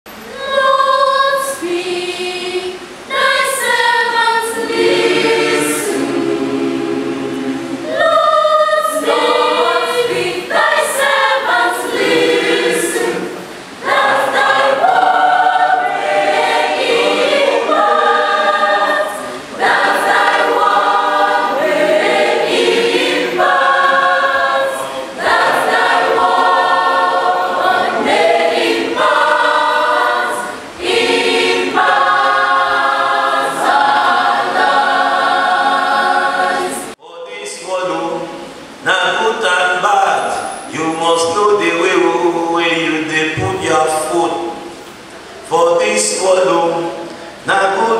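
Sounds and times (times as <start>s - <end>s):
choir singing: 0.1s - 44.8s.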